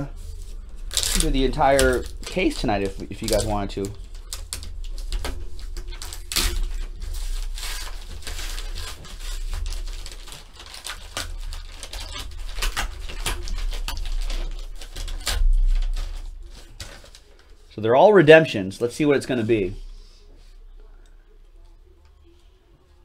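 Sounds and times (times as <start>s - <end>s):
paper envelope rustling and tearing: 0.0s - 17.7s.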